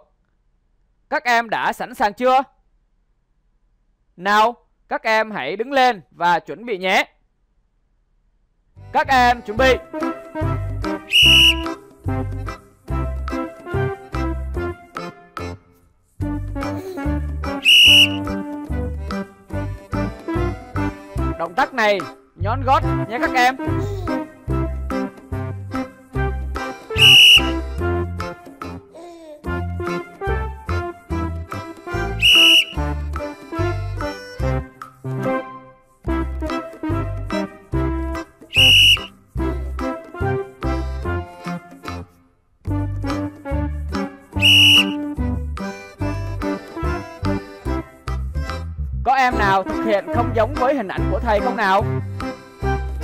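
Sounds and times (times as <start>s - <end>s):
children's background music: 8.8s - 53.0s
sports whistle blast: 11.1s - 11.8s, 17.6s - 18.3s, 26.9s - 27.6s, 32.2s - 32.8s, 38.5s - 39.1s, 44.4s - 45.1s.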